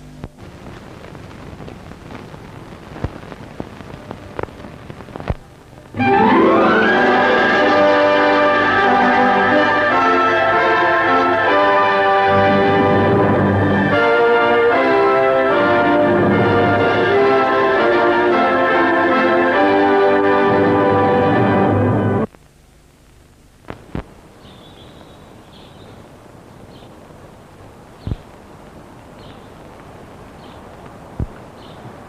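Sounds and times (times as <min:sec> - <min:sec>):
orchestral music with brass: 0:06.0 - 0:22.3.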